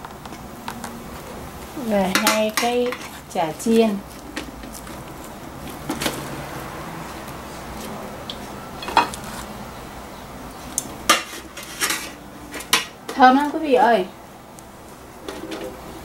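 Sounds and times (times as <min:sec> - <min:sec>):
steady low hiss: 0:00.0 - 0:16.0
metal tongs clanking on pot: 0:02.0 - 0:03.1, 0:08.3 - 0:09.2.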